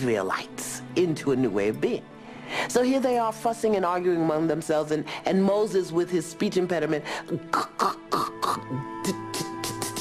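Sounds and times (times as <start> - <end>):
background music with held tones: 0.0 - 10.0
woman imitating a stutter: 7.5 - 10.0.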